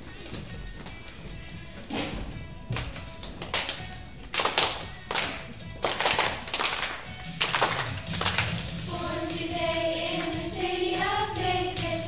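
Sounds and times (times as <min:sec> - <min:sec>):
faint backing music: 0:00.0 - 0:12.0
group clapping slow beat: 0:02.7 - 0:12.0.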